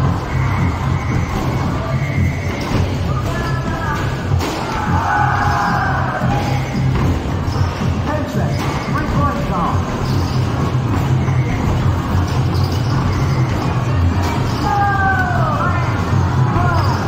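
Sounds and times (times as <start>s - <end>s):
background music: 0.0s - 17.0s
basketballs thudding on hoops: 0.0s - 17.0s
voices: 0.0s - 17.0s.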